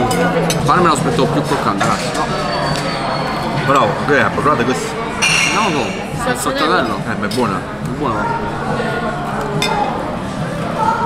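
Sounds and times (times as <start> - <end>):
tableware clink: 5.2 - 6.6.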